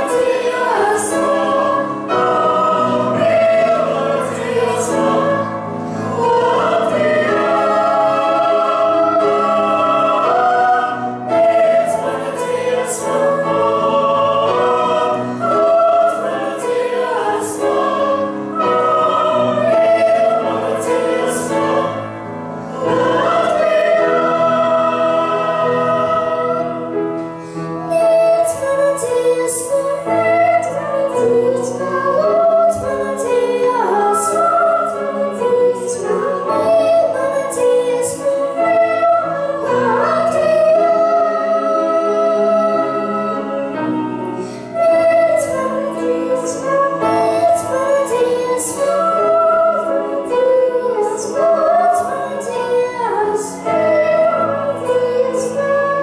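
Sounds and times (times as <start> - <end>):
mixed choir singing: 0.0 - 27.3, 27.9 - 56.0.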